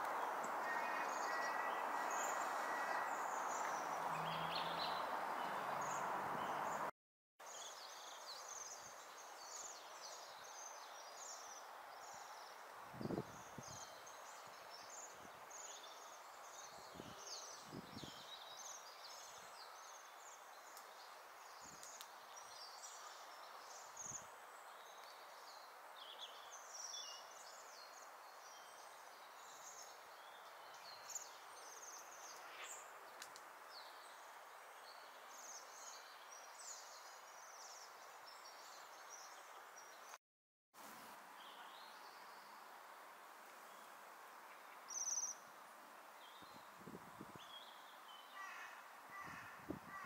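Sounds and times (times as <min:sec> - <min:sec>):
steady background hiss: 0:18.3 - 0:40.1, 0:40.8 - 0:49.8.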